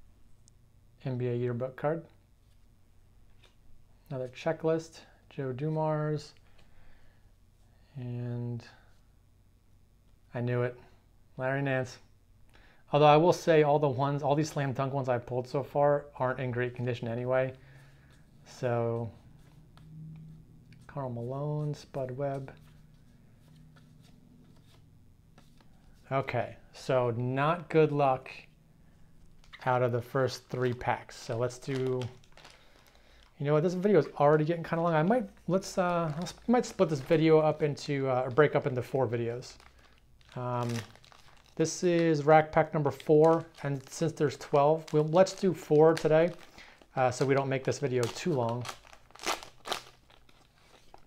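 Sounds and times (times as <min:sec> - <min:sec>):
low steady hum: 0:00.0 - 0:51.0
faint handling of cards: 0:02.0 - 0:06.8, 0:14.2 - 0:51.0
plastic wrapper crinkling: 0:29.2 - 0:51.0.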